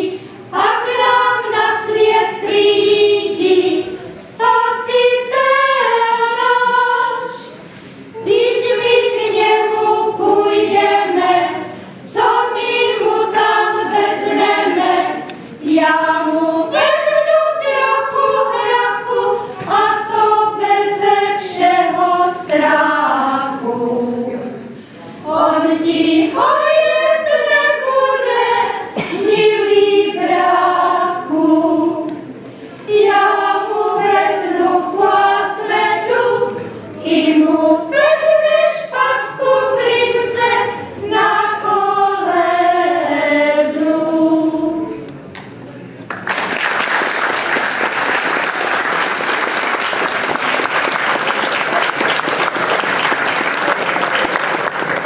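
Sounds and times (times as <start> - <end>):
women's folk choir singing: 0.0 - 45.2.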